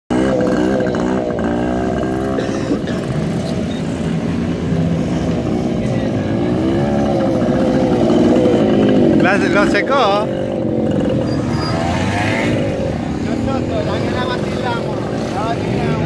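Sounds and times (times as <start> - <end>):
small motorcycle engines revving: 0.1 - 16.0.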